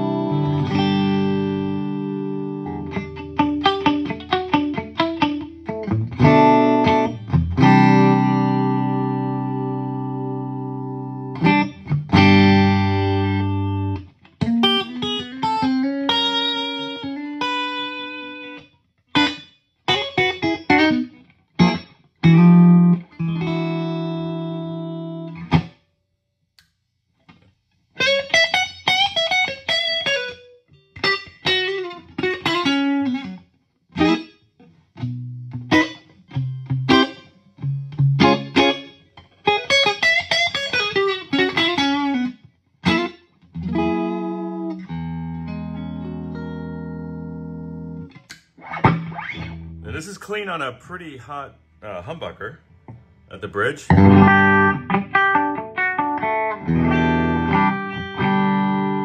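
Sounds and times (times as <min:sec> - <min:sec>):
clean electric guitar chords and runs: 0:00.0 - 0:18.6, 0:19.2 - 0:25.7, 0:35.0 - 0:50.0, 0:53.9 - 0:59.0.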